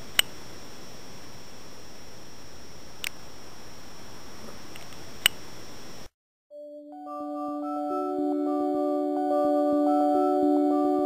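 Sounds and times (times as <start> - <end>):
camera microphone hiss: 0.0 - 6.1.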